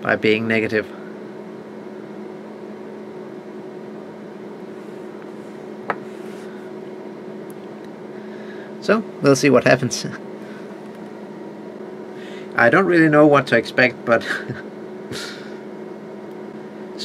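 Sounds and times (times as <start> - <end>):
steady machine hum: 0.0 - 17.0.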